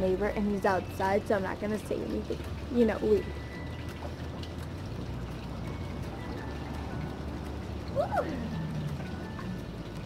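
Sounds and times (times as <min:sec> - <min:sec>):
low steady hum: 0:00.0 - 0:10.0
pool water lapping: 0:00.0 - 0:10.0.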